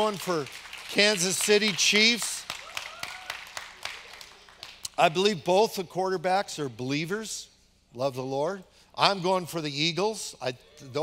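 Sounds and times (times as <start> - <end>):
scattered audience claps: 0.0 - 5.1.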